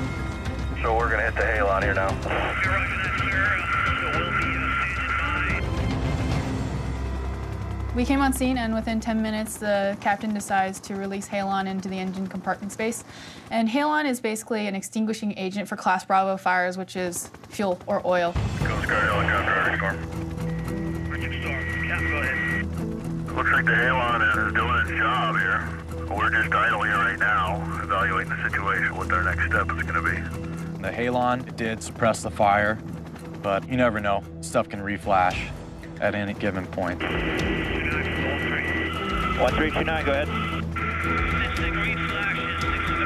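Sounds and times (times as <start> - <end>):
steady low drone: 0.0 - 13.6, 18.3 - 43.0
background music: 0.0 - 43.0
person speaking over radio: 0.8 - 5.6, 18.6 - 20.0, 21.1 - 22.6, 23.4 - 30.3, 37.1 - 43.0.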